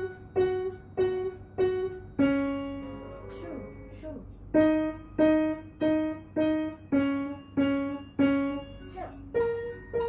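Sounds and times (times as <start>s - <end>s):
piano notes played slowly: 0.0s - 10.0s.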